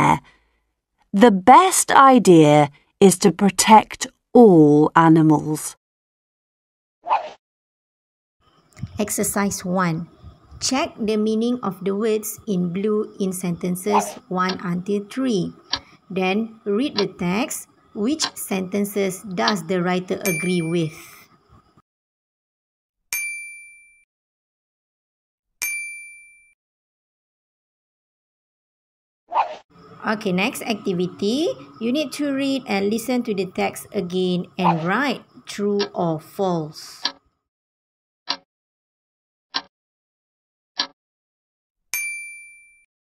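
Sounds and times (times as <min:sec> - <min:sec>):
bright ding chime: 0:20.2 - 0:20.8, 0:42.0 - 0:42.8.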